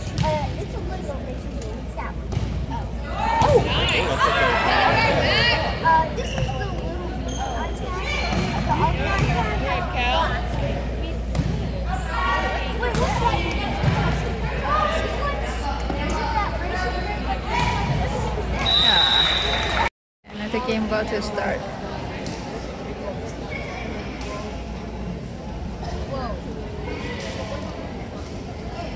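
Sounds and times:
voices of players and spectators: 0.0 - 28.9
referee's whistle: 18.6 - 19.9.

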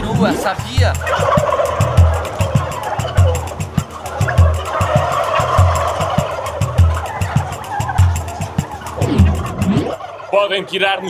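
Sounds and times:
turkeys gobbling: 0.0 - 11.0.

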